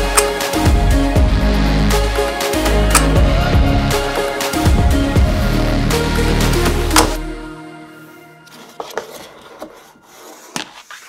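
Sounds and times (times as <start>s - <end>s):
wood rubbing and scraping: 8.5s - 11.0s.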